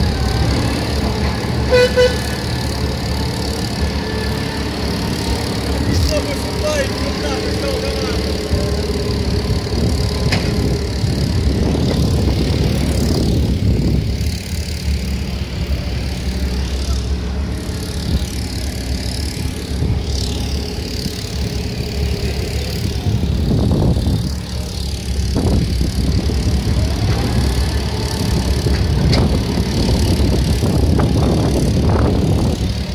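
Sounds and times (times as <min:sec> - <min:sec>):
dump truck diesel engine: 0:00.0 - 0:32.9.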